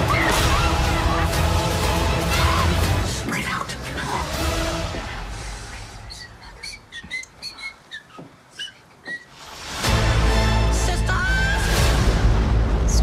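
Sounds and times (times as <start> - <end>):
trailer background music: 0.0 - 6.0, 9.4 - 13.0.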